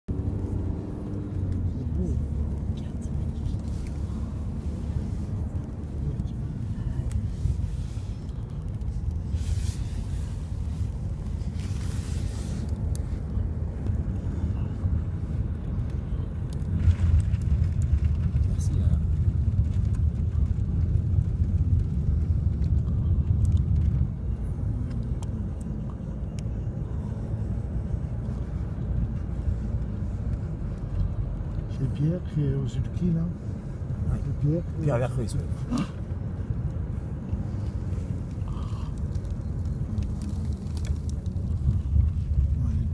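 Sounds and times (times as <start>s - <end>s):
engine and tyre rumble in car: 0.0s - 42.9s.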